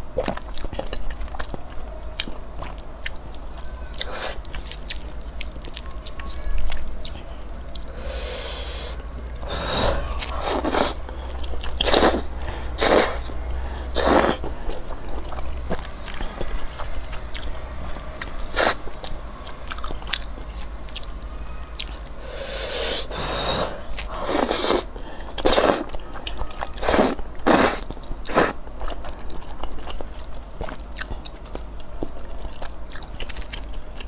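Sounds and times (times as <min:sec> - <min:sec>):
wet chewing: 0:00.2 - 0:08.0, 0:10.1 - 0:17.5, 0:24.0 - 0:34.0
slurping noodles: 0:08.0 - 0:11.0, 0:11.8 - 0:13.3, 0:13.9 - 0:14.5, 0:22.3 - 0:25.9, 0:26.8 - 0:28.6.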